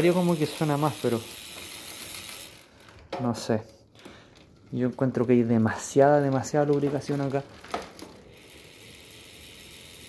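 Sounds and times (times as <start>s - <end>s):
bicycle hub ratchet clicking: 0.0s - 3.1s, 4.0s - 10.0s.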